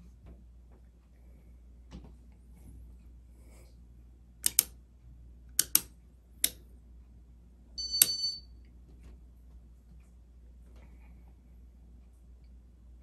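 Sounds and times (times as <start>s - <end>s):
ceiling fan low hum: 0.0s - 13.0s
sharp switch clicks: 4.4s - 4.8s, 5.6s - 6.6s, 8.0s - 8.3s
high ringing clink: 7.8s - 8.5s.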